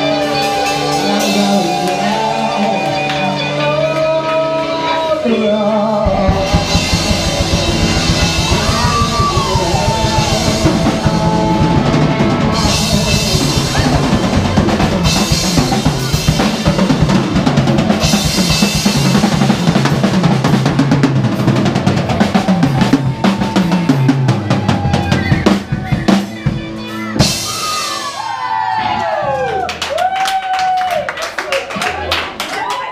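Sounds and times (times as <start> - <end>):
live band playing: 0.0 - 29.5
bass drum: 6.0 - 27.8
snare drum: 6.1 - 11.8.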